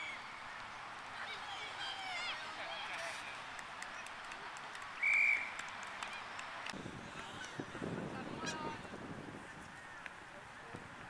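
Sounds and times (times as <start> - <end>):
murmur of distant voices: 0.0 - 11.0
whistle blast: 5.0 - 5.6.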